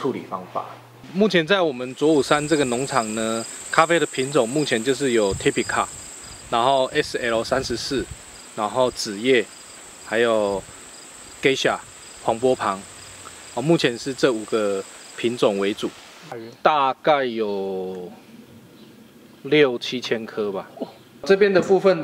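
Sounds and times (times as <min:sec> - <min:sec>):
man talking: 0:00.0 - 0:05.9, 0:06.5 - 0:09.5, 0:10.1 - 0:10.6, 0:11.4 - 0:12.8, 0:13.6 - 0:18.2
high-pitched insect drone: 0:01.8 - 0:15.9.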